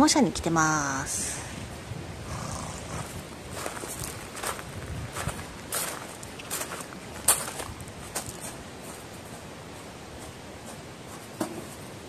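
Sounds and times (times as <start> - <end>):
footsteps crunching on gravel: 2.8 - 11.3.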